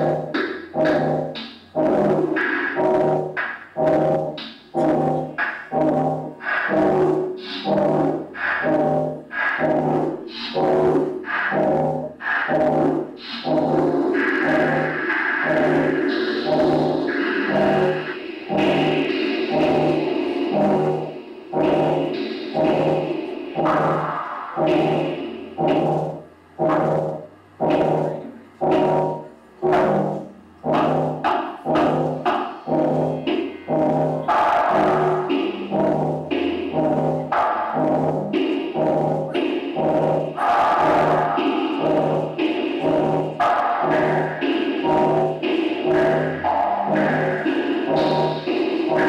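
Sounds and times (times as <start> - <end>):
electronic synthesizer music: 0.0 - 49.0.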